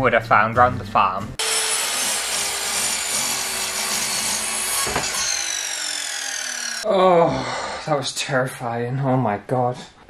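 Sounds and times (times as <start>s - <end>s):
saw blade cutting wood: 1.4s - 6.8s
saw motor whine: 1.4s - 6.9s.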